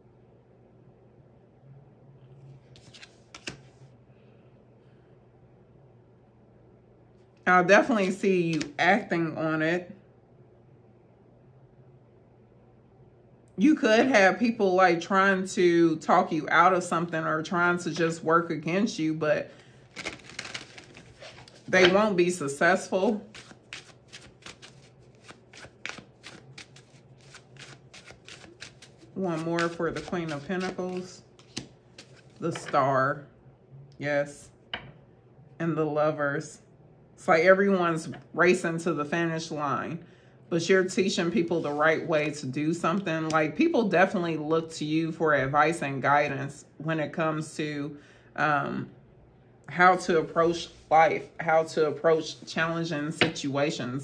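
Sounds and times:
faint low hum: 0.0s - 54.0s
cards being shuffled: 2.6s - 3.8s, 7.9s - 8.8s, 19.9s - 32.7s, 41.6s - 41.8s
cards clicking on wooden table: 2.8s - 3.7s, 29.6s - 32.2s.

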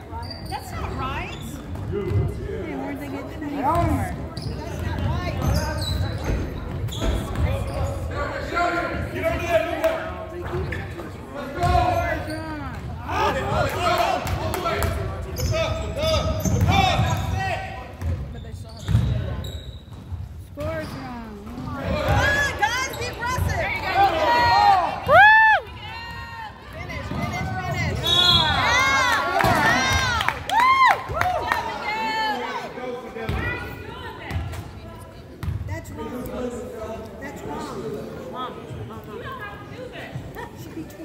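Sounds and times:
sneakers squeaking on gym floor: 0.0s - 2.4s, 3.6s - 8.3s, 10.5s - 13.0s, 15.2s - 23.8s
voices of players and spectators: 0.0s - 41.0s
basketball bouncing: 18.0s - 19.2s, 27.0s - 27.8s.

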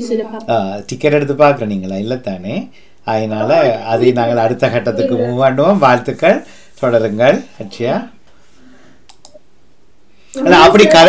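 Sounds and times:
low background noise: 0.0s - 11.0s
faint quick clicks: 9.1s - 9.4s.

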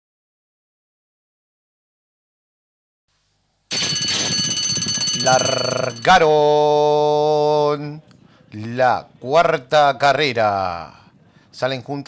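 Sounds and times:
starting bell ringing: 3.7s - 6.6s.

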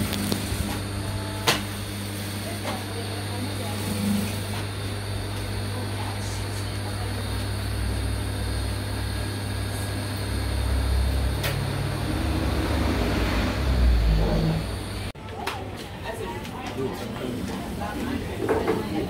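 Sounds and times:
sewing machine motor hum: 0.0s - 15.1s.

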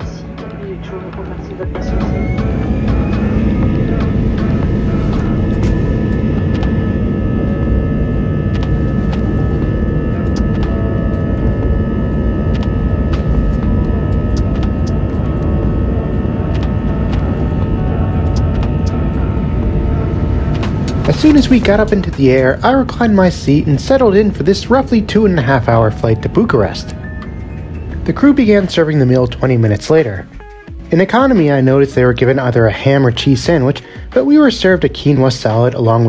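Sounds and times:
jet engines whining and rumbling: 0.0s - 36.0s.

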